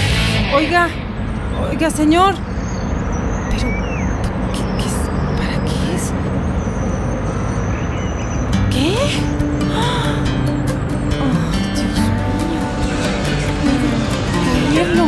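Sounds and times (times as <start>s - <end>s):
steady low notes: 0.0s - 3.4s, 8.7s - 15.0s
traffic noise: 0.0s - 15.0s
background music: 8.5s - 15.0s
murmur of voices: 11.2s - 15.0s.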